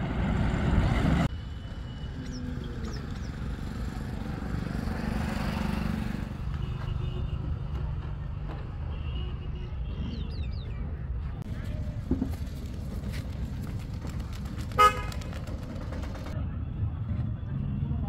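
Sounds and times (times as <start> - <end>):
road traffic noise: 0.0 - 18.0.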